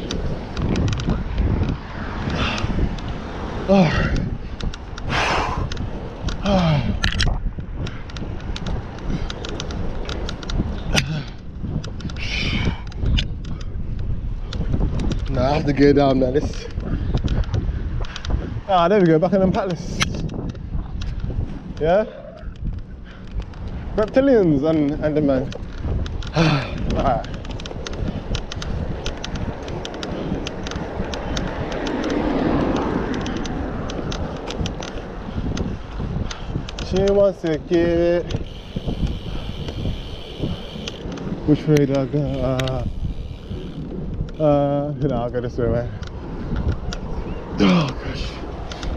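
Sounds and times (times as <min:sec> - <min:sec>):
sharp clicks and knocks: 0:00.0 - 0:03.2, 0:04.1 - 0:06.4, 0:07.0 - 0:15.4, 0:22.5 - 0:44.4
car passing: 0:00.0 - 0:11.3, 0:21.2 - 0:48.9
wind buffeting microphone: 0:00.0 - 0:48.9.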